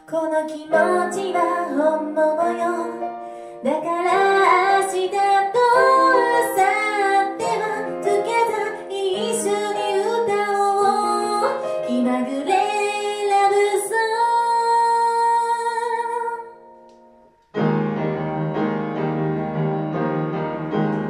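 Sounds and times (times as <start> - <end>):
grand piano accompaniment: 0.0 - 13.8, 16.8 - 21.0
woman singing: 0.0 - 16.6.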